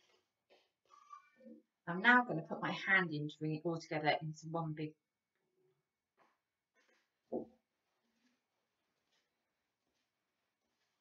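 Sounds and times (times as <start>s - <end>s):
hands rustling dough in bowl: 6.2s - 11.0s.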